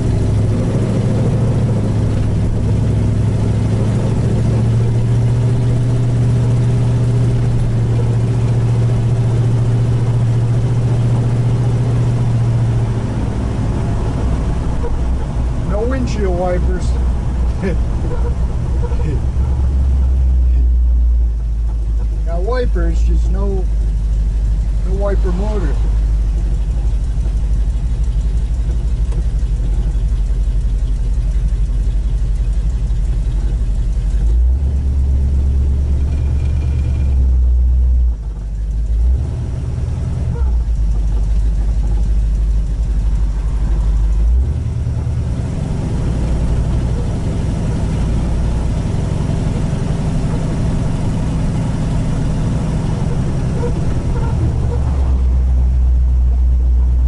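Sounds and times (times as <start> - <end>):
car engine rumbling: 0.0 - 57.0.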